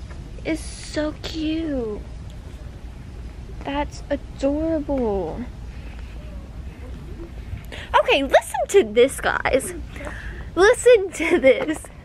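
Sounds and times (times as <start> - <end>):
woman's voice: 3.6 - 5.5, 7.8 - 12.0.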